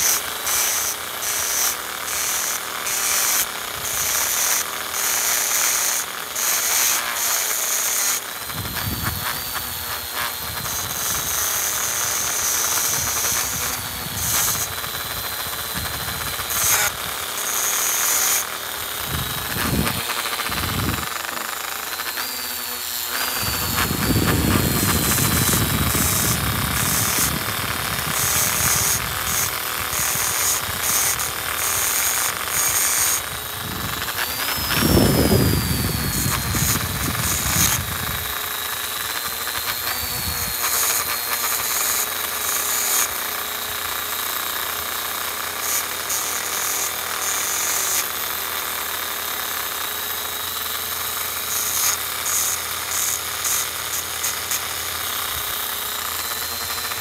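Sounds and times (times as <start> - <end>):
polishing point grinding on metal: 0.0 - 43.6, 44.2 - 57.0
rotary tool whining: 0.0 - 57.0.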